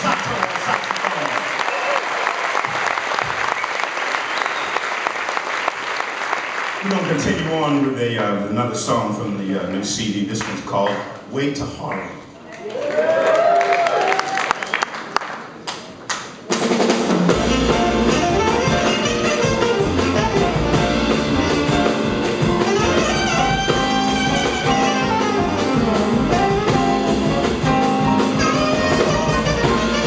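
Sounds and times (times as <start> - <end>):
jazz band playing: 16.5 - 30.0.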